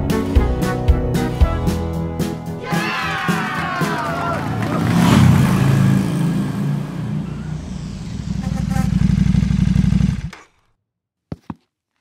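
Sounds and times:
motorcycle engine revving: 0:04.3 - 0:10.6.

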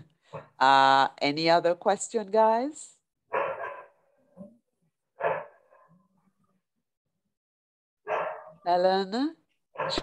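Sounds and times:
bark-like animal call: 0:03.3 - 0:04.2, 0:05.2 - 0:06.0, 0:08.1 - 0:08.6, 0:09.8 - 0:10.0.

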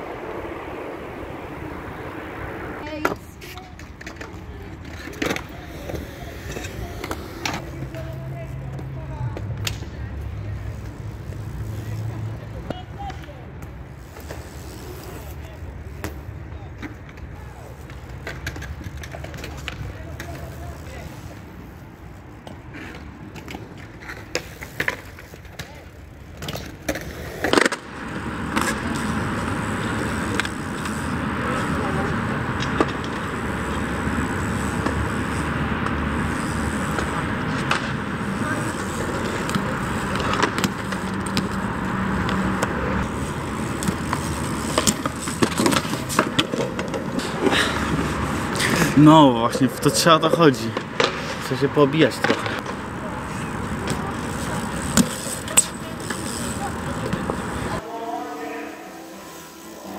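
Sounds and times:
bike tyres rolling on concrete: 0:00.0 - 0:59.9
bike rattling and knocking: 0:27.7 - 0:49.2, 0:49.8 - 0:57.8.

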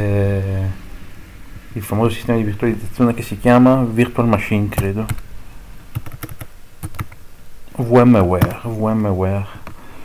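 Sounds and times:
computer keyboard keystrokes: 0:05.9 - 0:07.2.

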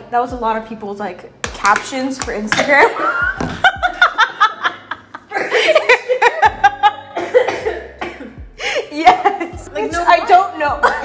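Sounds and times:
women laughing hard: 0:02.8 - 0:07.9.

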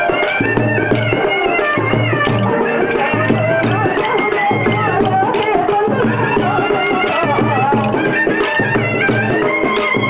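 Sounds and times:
high wavering folk melody: 0:00.0 - 0:10.0
repeating drum beat: 0:00.0 - 0:10.0.

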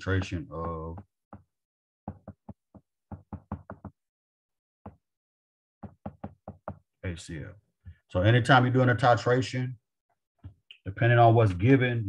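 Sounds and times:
stylus tapping on glass screen: 0:02.1 - 0:04.0, 0:05.8 - 0:06.9.

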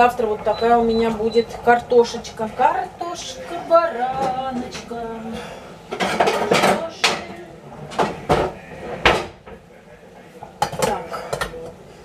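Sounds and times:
dishes and cutlery clinking: 0:04.1 - 0:09.7, 0:10.4 - 0:11.8.

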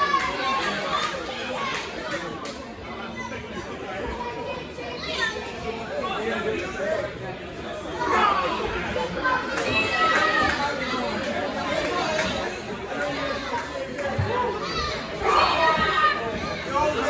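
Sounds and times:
audience chatter: 0:00.0 - 0:17.0
people shouting: 0:14.6 - 0:17.0.

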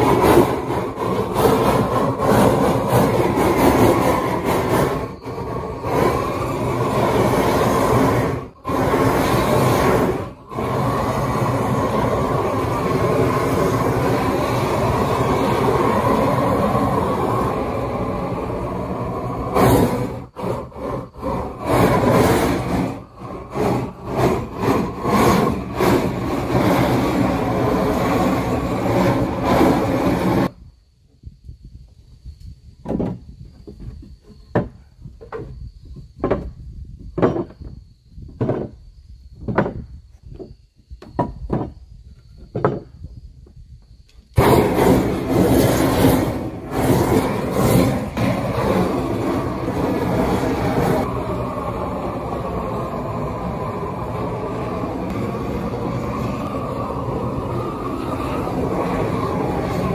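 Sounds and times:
propane torch flame burning: 0:00.0 - 0:30.6, 0:44.3 - 0:59.9.

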